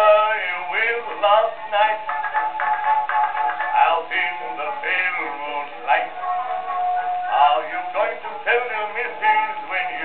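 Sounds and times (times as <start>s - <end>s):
man singing on old gramophone record: 0.0s - 10.0s.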